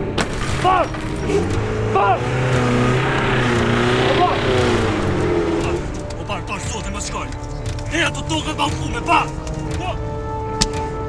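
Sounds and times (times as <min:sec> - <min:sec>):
car engine revving: 0:00.0 - 0:10.0
man shouting: 0:01.9 - 0:02.3.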